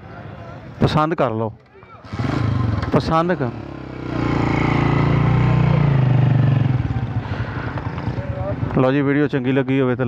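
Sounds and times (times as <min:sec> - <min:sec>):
engine running: 0:02.1 - 0:08.7.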